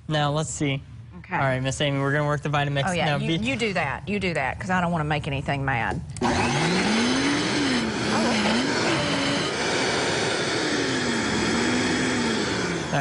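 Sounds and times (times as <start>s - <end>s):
blender motor running: 6.2s - 13.0s.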